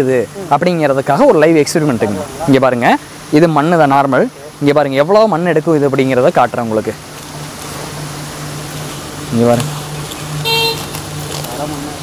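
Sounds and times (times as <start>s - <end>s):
short high horn toot: 10.4s - 11.0s.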